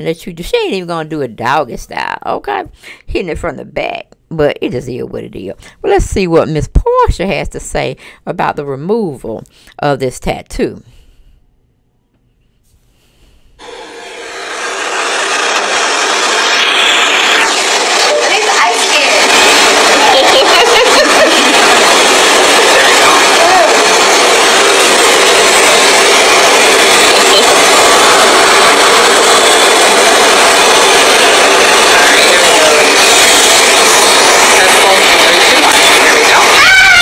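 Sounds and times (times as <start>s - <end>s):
loud hiss-like noise: 13.6s - 37.0s.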